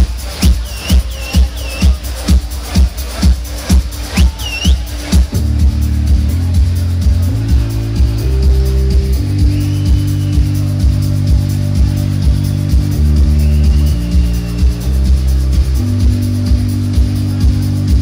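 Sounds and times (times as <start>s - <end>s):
heavy bass chords: 0.0s - 18.0s.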